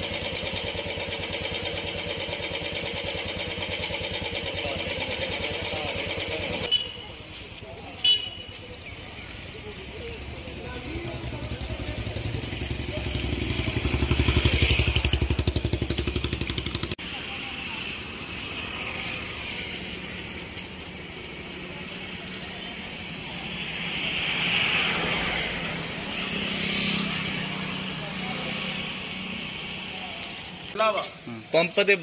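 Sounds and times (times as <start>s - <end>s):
motorcycle engine running: 0.0s - 31.3s
road traffic: 0.0s - 32.0s
vehicle passing: 9.3s - 31.4s.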